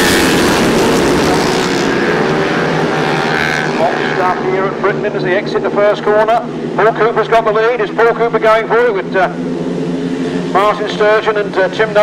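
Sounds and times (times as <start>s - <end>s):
racing motorcycle engines droning: 0.0s - 12.0s.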